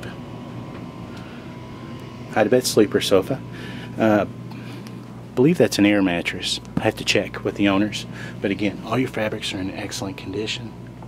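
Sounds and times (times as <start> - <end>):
air conditioning humming: 0.0 - 11.0
faint steady whine: 0.0 - 11.0.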